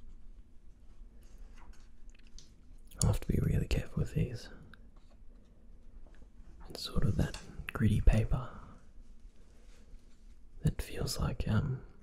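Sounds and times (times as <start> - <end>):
paper rustle: 0.0 - 2.8, 8.8 - 10.6
comic book pages turning: 1.2 - 2.8
faint paper clicks: 1.2 - 3.3.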